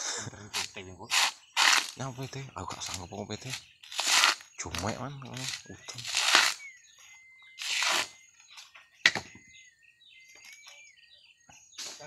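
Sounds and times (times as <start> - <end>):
coconut husk tearing: 0.5 - 6.7, 7.5 - 8.2.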